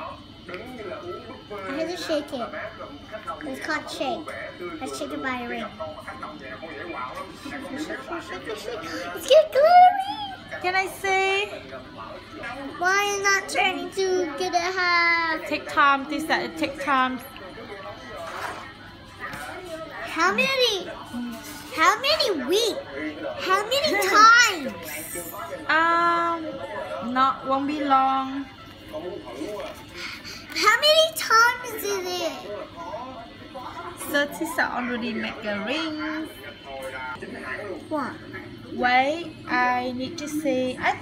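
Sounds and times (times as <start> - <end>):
faint voices of child and adult: 1.6 - 6.3, 7.2 - 17.0, 19.2 - 27.1, 29.3 - 35.8, 37.3 - 38.8.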